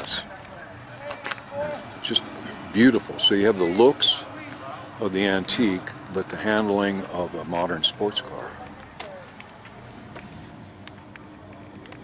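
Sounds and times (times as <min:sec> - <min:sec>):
low steady rumble: 0:00.2 - 0:12.0.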